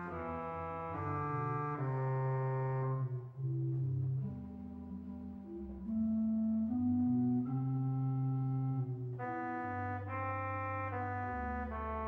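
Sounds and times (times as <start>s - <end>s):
church organ held chords: 6.7s - 12.0s.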